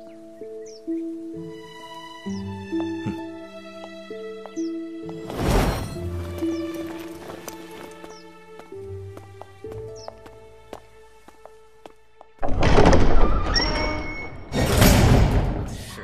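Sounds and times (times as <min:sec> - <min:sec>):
soundtrack music with held notes: 0:00.0 - 0:15.6.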